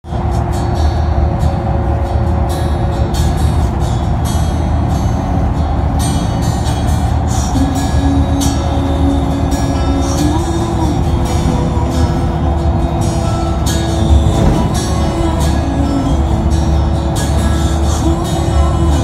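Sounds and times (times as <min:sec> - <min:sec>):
bus rumbling inside cabin: 0:00.0 - 0:19.0
music playing: 0:00.0 - 0:19.0.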